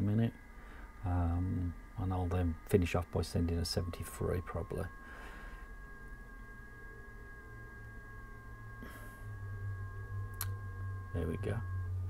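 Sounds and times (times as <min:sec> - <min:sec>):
low hum: 0:00.0 - 0:12.0
two steady high tones: 0:00.2 - 0:12.0.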